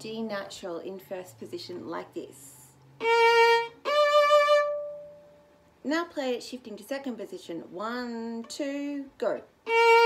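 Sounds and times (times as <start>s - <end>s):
bowed violin note: 3.0s - 5.4s, 9.6s - 10.0s.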